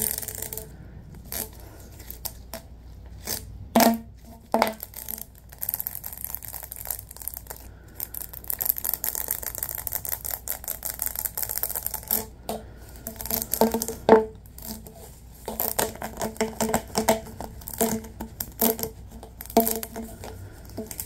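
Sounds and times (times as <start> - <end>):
gloved fingers scratching ribbed tube: 0.0 - 3.5, 4.2 - 21.0.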